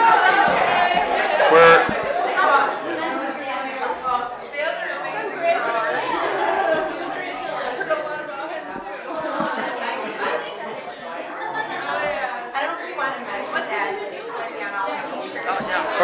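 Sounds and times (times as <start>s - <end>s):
many people talking: 0.0s - 16.0s.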